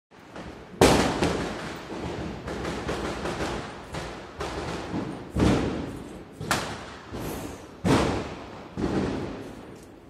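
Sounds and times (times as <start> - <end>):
fireworks going off: 0.2 - 10.0
firecracker bang: 0.3 - 9.8.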